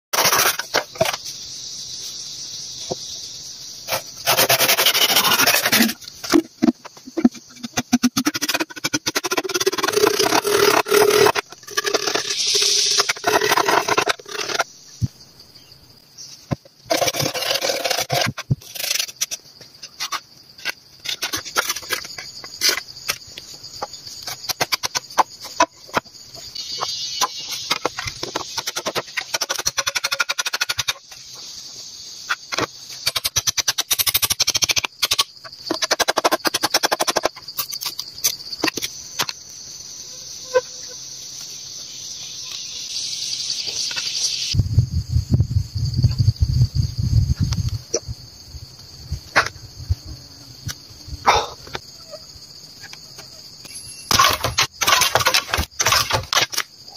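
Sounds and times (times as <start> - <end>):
bamboo scraping and knocking: 0.2 - 1.3, 3.9 - 14.7, 16.3 - 31.4, 54.1 - 56.9
high insect drone: 0.2 - 56.9.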